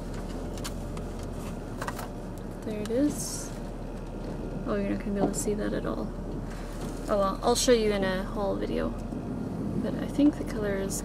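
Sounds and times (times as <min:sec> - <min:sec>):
low hum inside car: 0:00.0 - 0:11.0.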